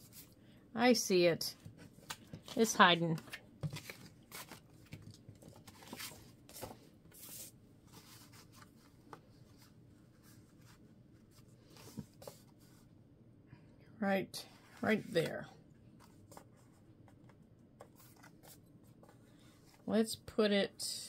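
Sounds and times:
paper rustling: 0:01.7 - 0:12.6.

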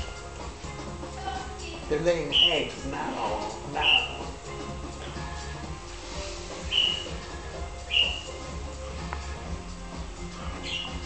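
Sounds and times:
faint background music: 0:00.0 - 0:11.0
high-pitched chirps: 0:02.3 - 0:02.8, 0:03.7 - 0:04.4, 0:06.6 - 0:08.5, 0:10.4 - 0:11.0.

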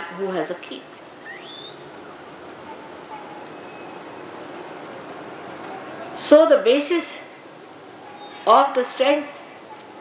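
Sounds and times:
recording hiss: 0:00.0 - 0:10.0
faint rising chirp: 0:01.2 - 0:06.2.

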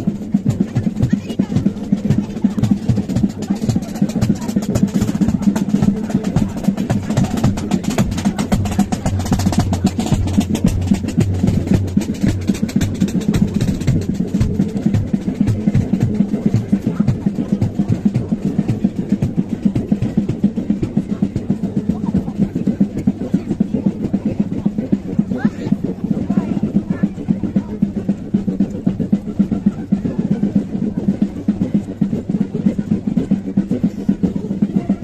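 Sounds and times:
snare and bass drums: 0:00.0 - 0:35.0.

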